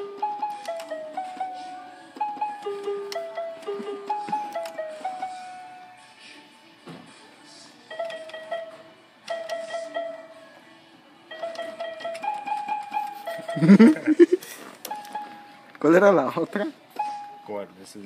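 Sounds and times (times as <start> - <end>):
toy electronic keyboard notes: 0.0 - 6.0, 7.9 - 10.5, 11.3 - 17.6
loud laughter: 13.4 - 14.4.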